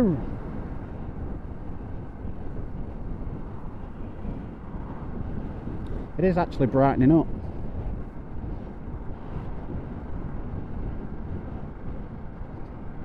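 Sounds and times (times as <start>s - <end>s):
wind and road noise: 0.0s - 13.0s.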